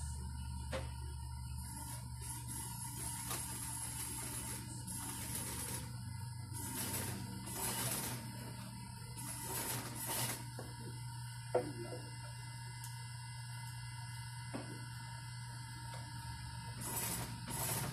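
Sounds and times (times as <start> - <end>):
motor hum: 0.0 - 17.9
sewing machine stitching: 6.6 - 8.2, 16.8 - 17.9.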